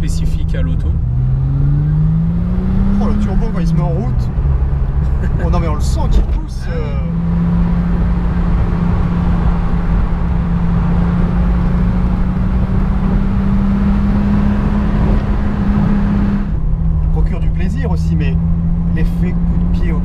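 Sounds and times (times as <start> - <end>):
car engine accelerating: 0.0 - 20.0
road and wind noise: 0.0 - 20.0.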